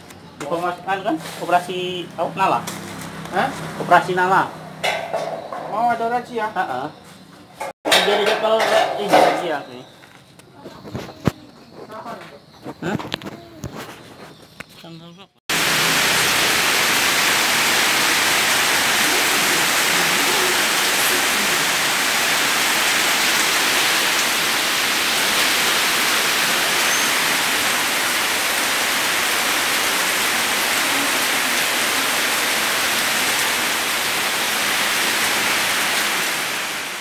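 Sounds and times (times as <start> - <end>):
loud rushing hiss: 15.5 - 37.0.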